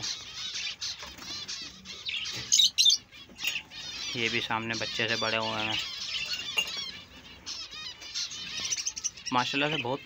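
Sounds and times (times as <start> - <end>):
finches beeping calls: 0.0 - 10.0.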